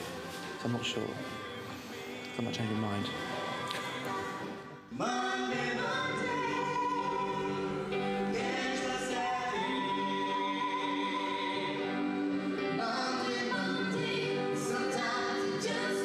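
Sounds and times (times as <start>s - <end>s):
musical accompaniment: 0.0s - 16.0s
pop singers singing: 0.0s - 16.0s.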